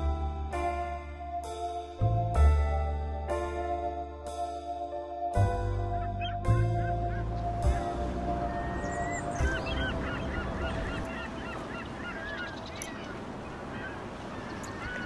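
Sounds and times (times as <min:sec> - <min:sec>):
soft keyboard music: 0:00.0 - 0:15.0
birds calling: 0:05.9 - 0:15.0.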